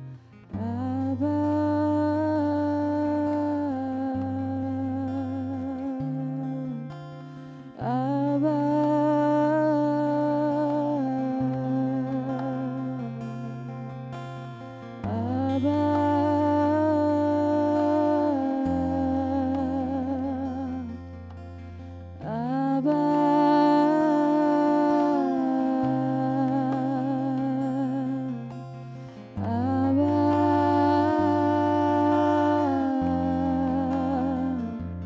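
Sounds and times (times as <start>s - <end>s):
woman singing long wordless note: 0.5s - 6.9s, 7.8s - 13.7s, 15.0s - 21.0s, 22.2s - 28.6s, 29.3s - 35.0s
woman singing wordless note: 22.2s - 28.3s, 29.4s - 34.8s.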